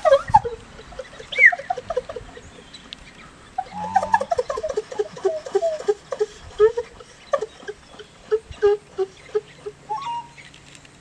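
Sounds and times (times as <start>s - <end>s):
bird-call whistles chirping: 3.6s - 4.3s, 9.9s - 10.5s.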